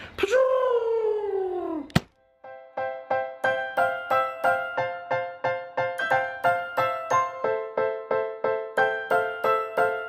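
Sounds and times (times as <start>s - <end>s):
keyboard jingle: 2.4s - 10.0s.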